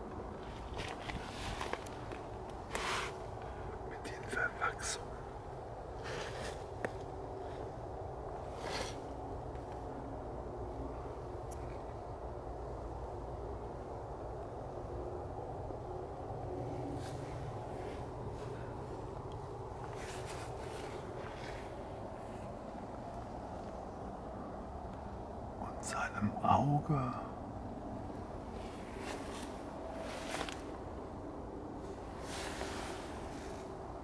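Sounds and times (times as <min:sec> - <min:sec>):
low outdoor rumble: 0:00.0 - 0:34.0
soft rustles: 0:00.1 - 0:03.5, 0:05.9 - 0:09.9, 0:16.7 - 0:23.9, 0:28.4 - 0:31.2, 0:31.8 - 0:33.8.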